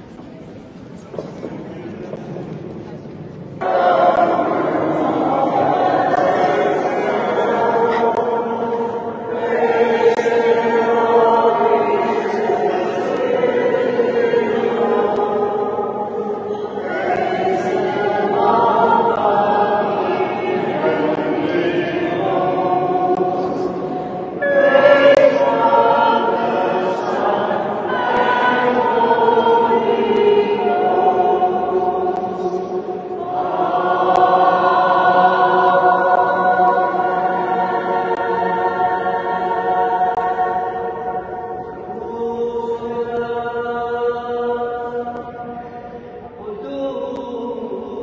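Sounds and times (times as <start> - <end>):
group singing a cappella: 3.6 - 48.0.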